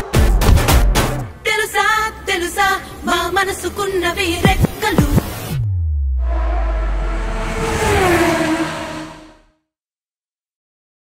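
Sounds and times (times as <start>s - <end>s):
car passing by: 5.2s - 9.6s.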